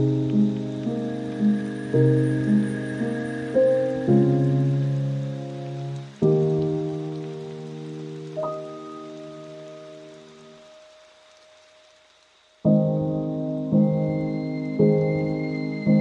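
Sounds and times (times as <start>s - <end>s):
piano chords: 0.0s - 10.8s, 12.6s - 16.0s
faint steady hiss: 0.0s - 16.0s.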